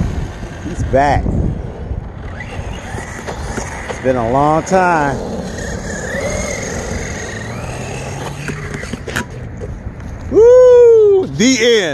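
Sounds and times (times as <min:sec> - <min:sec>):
tyre and wind noise: 0:00.0 - 0:11.9
electric motor whine: 0:01.5 - 0:09.3.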